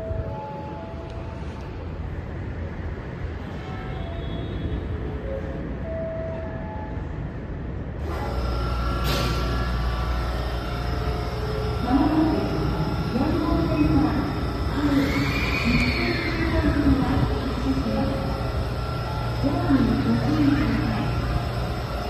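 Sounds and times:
electric train humming: 0.0s - 22.0s
high-pitched whine: 8.0s - 22.0s.

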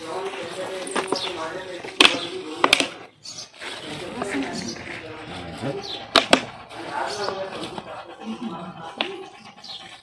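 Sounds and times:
people talking: 0.0s - 9.7s.

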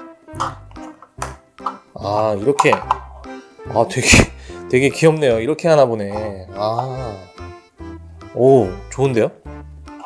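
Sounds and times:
plucked guitar-like music: 0.0s - 5.0s, 5.9s - 10.0s
plastic parts clicking: 0.4s - 3.1s.

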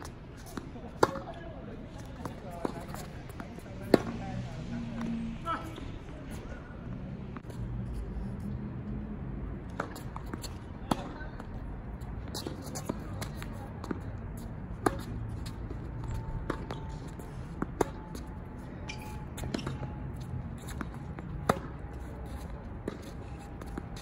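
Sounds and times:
tennis ball struck by rackets: 1.0s - 1.4s, 3.8s - 4.2s, 9.7s - 11.2s, 14.8s - 15.2s, 16.4s - 17.0s, 18.8s - 20.0s, 20.6s - 22.0s.

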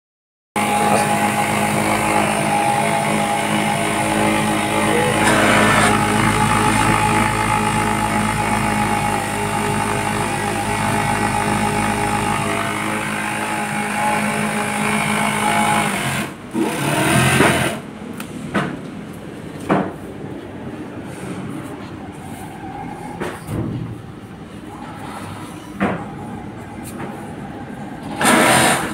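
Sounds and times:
industrial sewing machine stitching: 0.6s - 17.8s, 28.1s - 28.9s
loud burst of noise: 0.6s - 17.8s, 28.0s - 28.9s.

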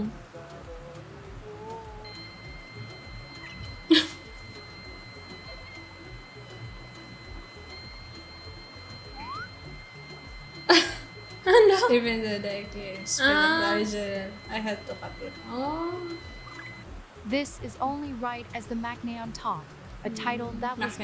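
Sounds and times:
background music with low beat: 0.0s - 21.0s.

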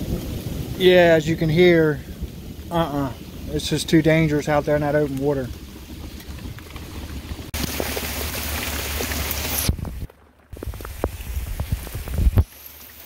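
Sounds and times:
heavy rain on water: 0.0s - 13.0s.

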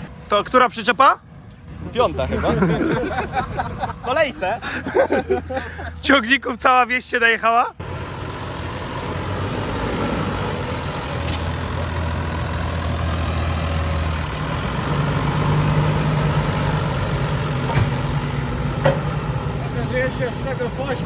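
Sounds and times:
tractor diesel engine: 0.0s - 21.0s.

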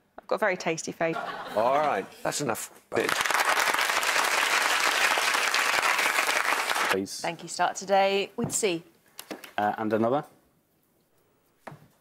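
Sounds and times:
crowd applause: 3.0s - 7.0s.

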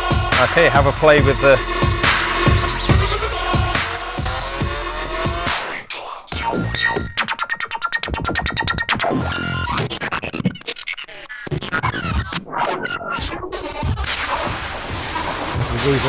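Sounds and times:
stuttering electronic drum loop: 0.0s - 5.7s, 6.3s - 16.0s.

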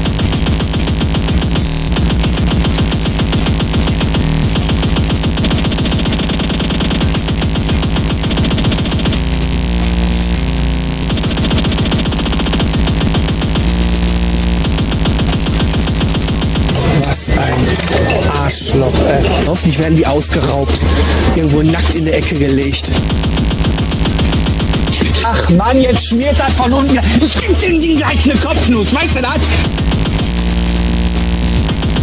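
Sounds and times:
fast distorted kick drums: 0.0s - 17.1s, 19.4s - 32.0s
held bass notes: 9.2s - 11.1s, 13.6s - 14.7s, 25.0s - 32.0s.

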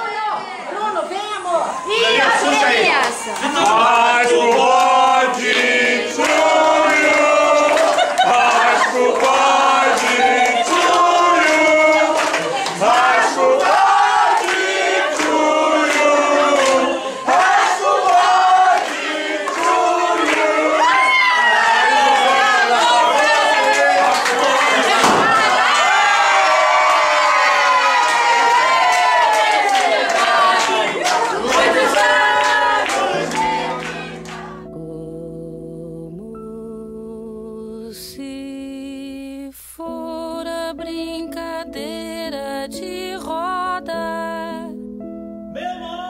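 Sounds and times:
group singing long notes: 1.9s - 39.1s.

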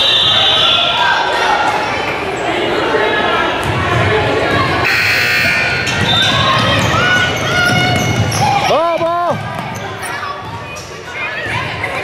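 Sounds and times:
spectators talking: 0.0s - 12.0s
sneakers squeaking: 3.6s - 12.0s.

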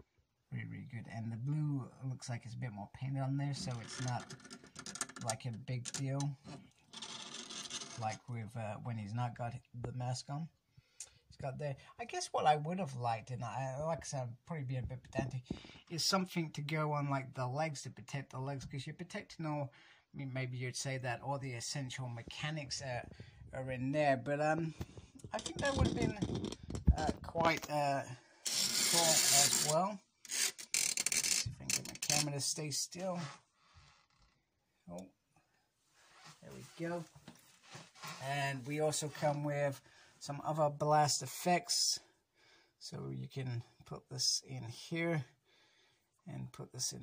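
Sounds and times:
rubbing rasp handling noise: 28.4s - 32.3s
person speaking a word: 28.8s - 30.0s.

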